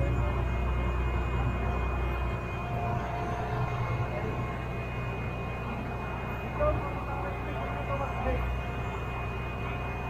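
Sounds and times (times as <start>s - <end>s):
diesel engine rumbling: 0.0s - 10.0s
faint high whine: 0.0s - 10.0s.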